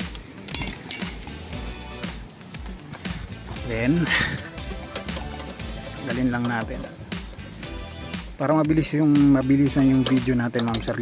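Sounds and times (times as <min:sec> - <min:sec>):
metallic clinks: 0:00.0 - 0:01.7
background music: 0:00.0 - 0:11.0.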